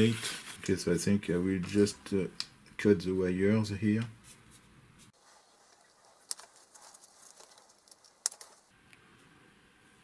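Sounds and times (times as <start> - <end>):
faint handling noise: 3.9 - 8.7.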